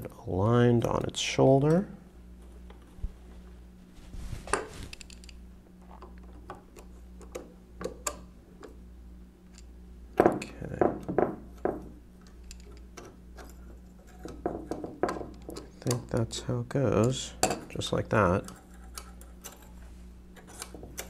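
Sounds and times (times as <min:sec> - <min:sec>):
screwdriver clicking on metal frame: 0:18.4 - 0:19.8, 0:20.4 - 0:21.0.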